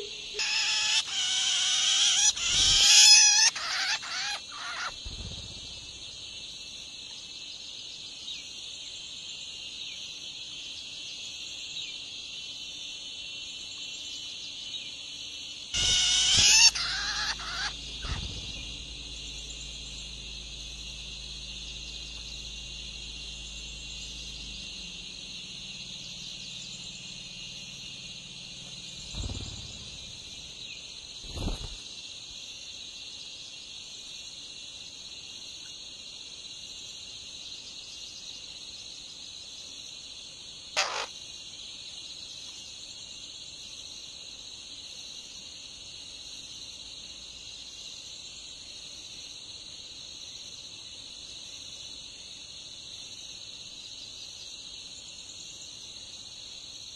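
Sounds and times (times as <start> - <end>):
nestlings begging calls: 0.4 - 6.3, 15.8 - 31.8, 40.8 - 41.2
high-pitched drone: 15.8 - 30.6.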